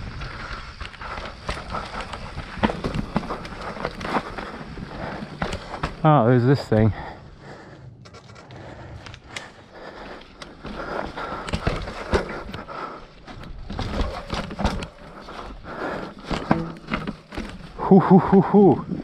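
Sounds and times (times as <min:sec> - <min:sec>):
bike knocking and rattling: 0:00.0 - 0:19.0
bike tyres on rocky dirt: 0:00.0 - 0:19.0.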